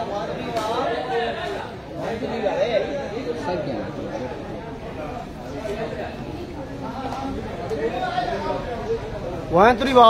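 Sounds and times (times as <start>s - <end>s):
overlapping chatter of voices: 0.0s - 10.0s.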